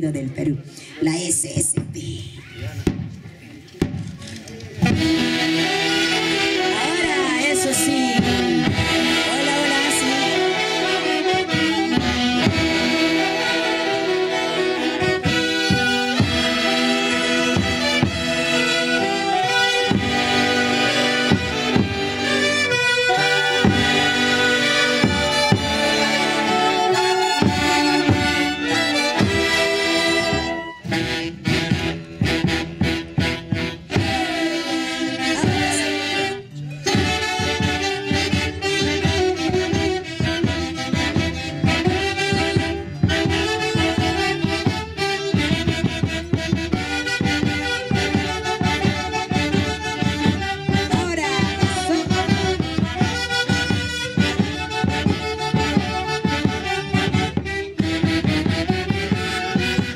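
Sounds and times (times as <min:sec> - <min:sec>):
saxophone-led band playing: 0:00.0 - 0:59.9.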